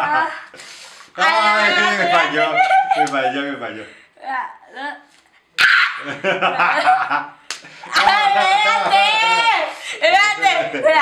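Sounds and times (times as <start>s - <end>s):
people laughing: 1.5s - 3.6s, 6.0s - 11.0s
boy yelping and laughing: 5.6s - 7.0s, 7.9s - 11.0s.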